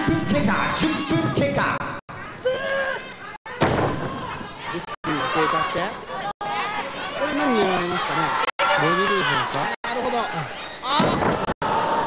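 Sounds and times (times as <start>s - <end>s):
crowd shouting and calling out: 0.0s - 12.0s.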